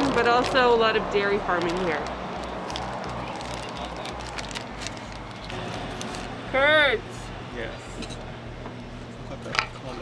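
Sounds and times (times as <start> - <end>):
plastic bag crinkling: 0.0 - 6.4
outdoor background noise: 0.0 - 10.0.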